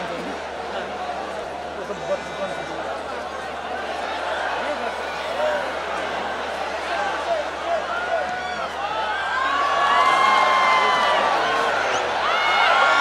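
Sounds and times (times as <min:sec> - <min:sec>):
stadium crowd shouting: 0:00.0 - 0:13.0.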